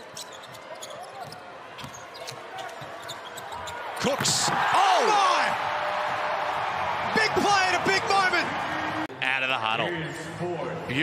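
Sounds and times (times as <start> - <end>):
shoe squeaks and taps: 0.0 - 3.8.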